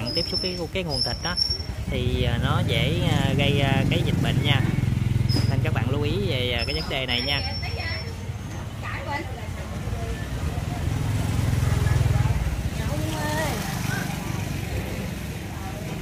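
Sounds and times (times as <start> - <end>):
people talking: 0.0 - 4.8, 5.4 - 11.0, 11.6 - 16.0
scooter engine running: 0.0 - 16.0.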